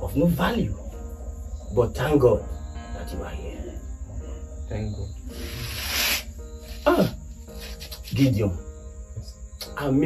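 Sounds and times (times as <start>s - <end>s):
soft background music: 0.0s - 10.0s
man speaking: 4.7s - 5.7s.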